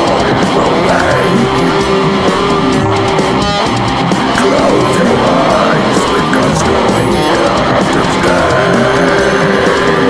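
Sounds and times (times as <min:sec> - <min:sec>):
distorted electric guitar riff: 0:00.0 - 0:10.0
drums: 0:00.0 - 0:10.0.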